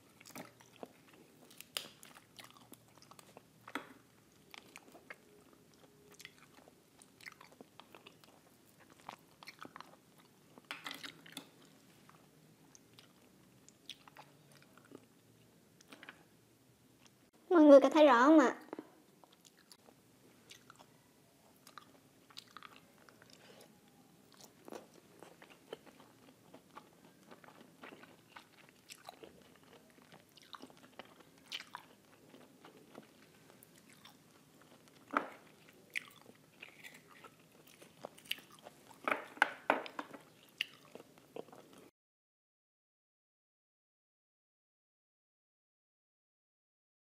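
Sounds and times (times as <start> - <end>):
woman chewing with wet smacks: 0.0 - 15.2, 18.7 - 41.9.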